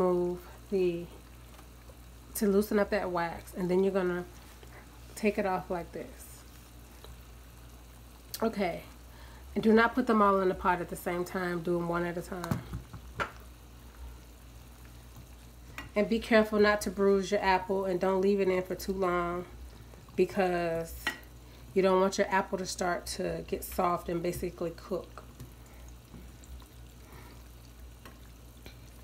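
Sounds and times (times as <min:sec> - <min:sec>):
water boiling in a pot: 0:00.0 - 0:29.0.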